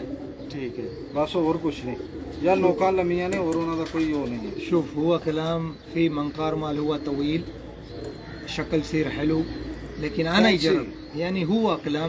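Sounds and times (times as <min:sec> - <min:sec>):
man speaking: 0:08.5 - 0:12.0.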